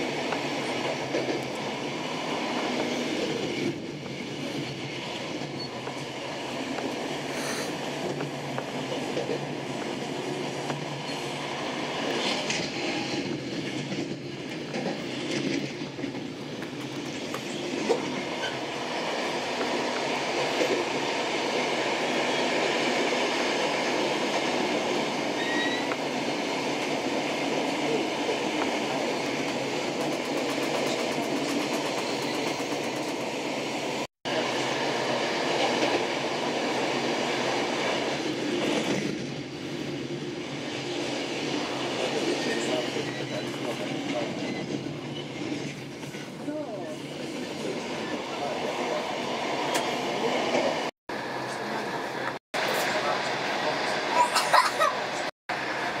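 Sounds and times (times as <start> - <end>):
train wheels rumbling on rails: 0.0 - 56.0.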